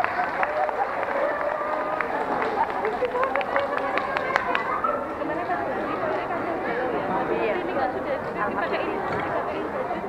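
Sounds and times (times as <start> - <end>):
audience murmur: 0.0 - 10.0.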